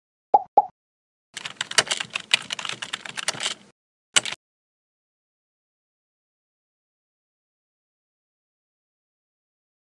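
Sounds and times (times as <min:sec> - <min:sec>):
pitched plops: 0:00.4 - 0:00.7
keyboard typing clicks: 0:01.4 - 0:04.4.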